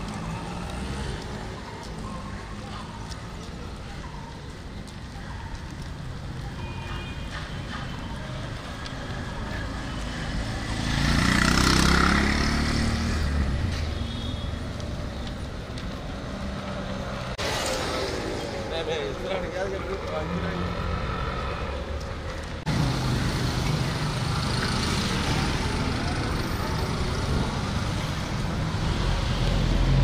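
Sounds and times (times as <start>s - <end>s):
street traffic noise: 0.0s - 30.0s
vehicle passing close by: 10.5s - 13.6s.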